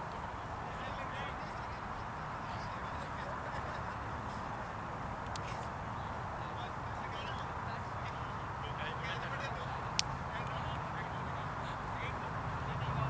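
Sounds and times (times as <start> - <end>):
faint distant voices and calls: 0.0 - 13.0
steady outdoor haze: 0.0 - 13.0.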